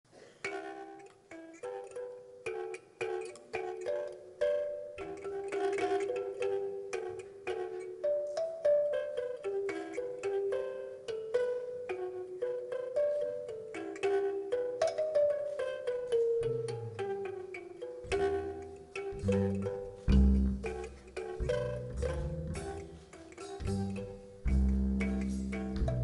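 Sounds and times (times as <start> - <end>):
jazz chords: 11.3 - 26.0.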